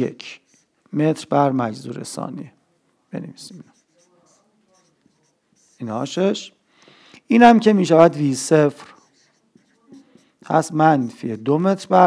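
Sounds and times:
marker scratching on whiteboard: 0.0 - 1.3, 3.4 - 6.5, 7.5 - 12.0
man's voice: 7.3 - 8.9, 10.4 - 12.0.

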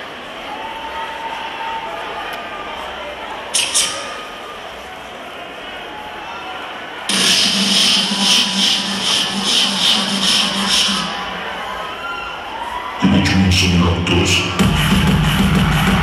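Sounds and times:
crowd noise: 0.0 - 16.0
pulsing electronic music beats: 7.1 - 11.4, 14.2 - 16.0.

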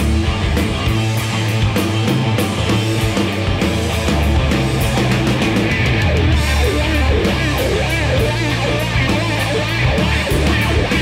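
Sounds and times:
instrumental rock music: 0.0 - 11.0.

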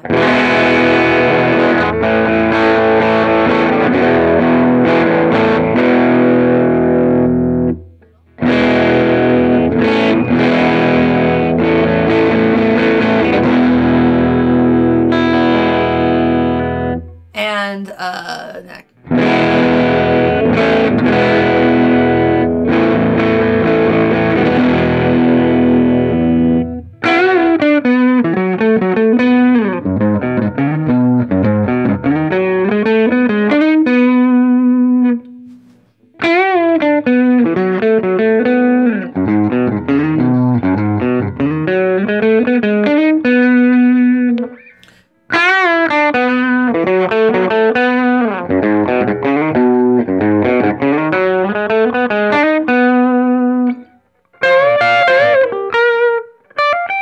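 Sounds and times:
overdriven electric guitar: 0.0 - 17.4, 18.9 - 57.0.

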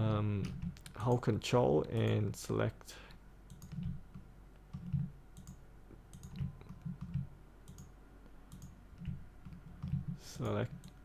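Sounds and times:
computer mouse clicking: 3.5 - 7.9, 8.5 - 11.0.

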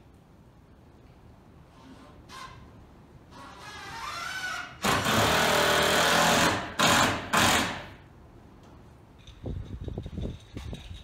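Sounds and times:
impact driver driving screw into wood: 4.3 - 8.0.

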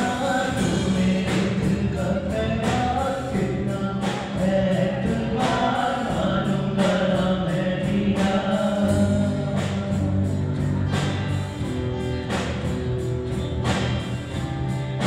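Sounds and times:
man singing into a microphone: 0.0 - 10.6
live band playing: 0.0 - 15.0.

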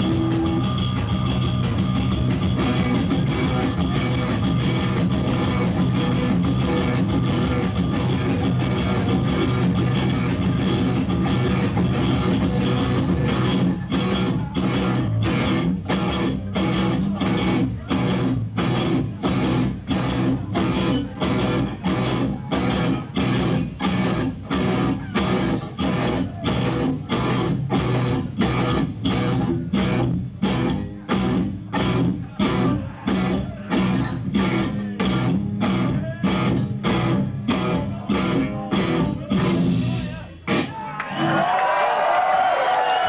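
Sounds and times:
rock band playing heavy riff: 0.0 - 43.0.

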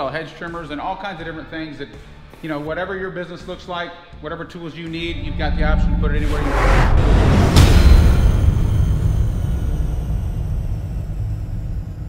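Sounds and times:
deep impact rumble: 5.1 - 12.0.

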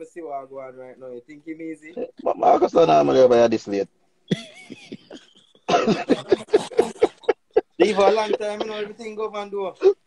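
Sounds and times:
person laughing: 4.3 - 8.9.

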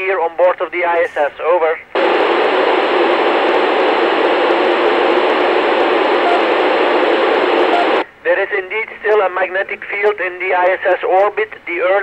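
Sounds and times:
radio hiss: 0.7 - 11.1.

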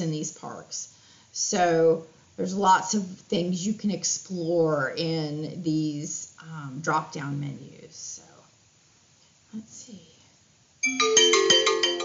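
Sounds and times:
phone ringtone melody: 10.8 - 12.0.

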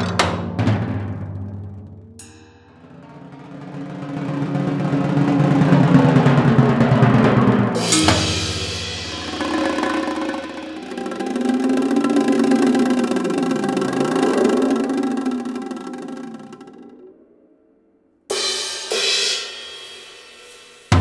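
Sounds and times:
rolled drum: 0.0 - 2.0, 2.8 - 17.2
hard drum stroke: 7.2 - 16.7
metallic ringing strikes: 7.8 - 11.4.

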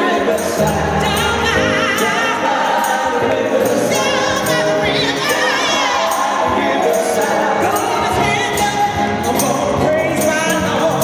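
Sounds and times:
woman singing with vibrato: 0.0 - 9.6
keyboards: 0.0 - 11.0.

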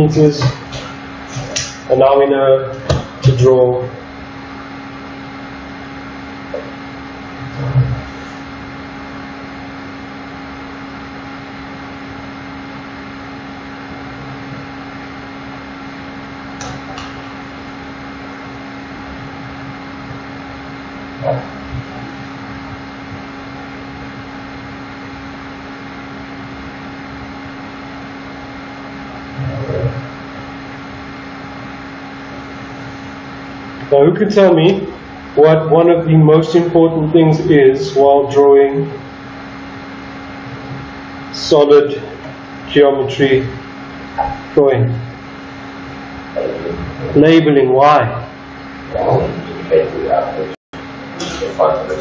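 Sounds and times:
steady mechanical hum: 0.0 - 52.0.

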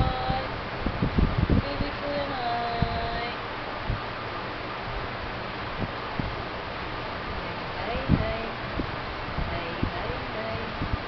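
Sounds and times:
steady background hiss: 0.0 - 11.0
soft low knocks: 5.8 - 6.4.

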